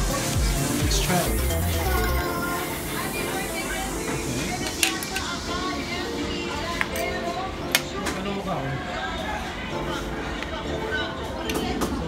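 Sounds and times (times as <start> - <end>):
background music: 0.0 - 12.0
voices: 0.0 - 12.0.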